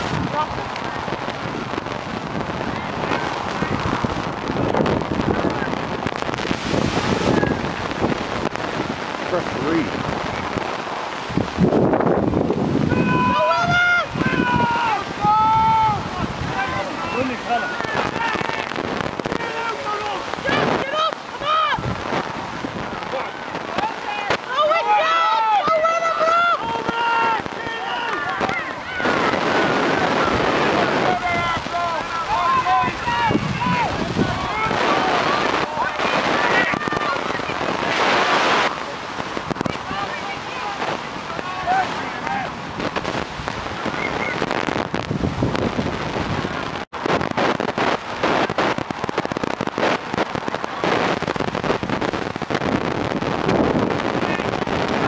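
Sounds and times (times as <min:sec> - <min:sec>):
wind on microphone: 0:00.0 - 0:55.0
players and spectators shouting: 0:12.6 - 0:22.2, 0:23.0 - 0:44.6.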